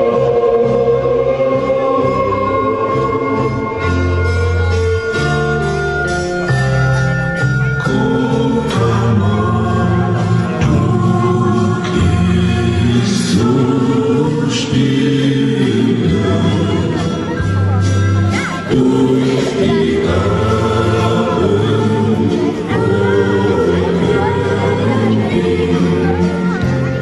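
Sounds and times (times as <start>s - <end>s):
hissing sung consonants: 0.0s - 4.9s, 7.8s - 27.0s
choir singing held notes: 0.0s - 5.2s, 7.8s - 27.0s
sustained chords with bass line: 0.0s - 27.0s.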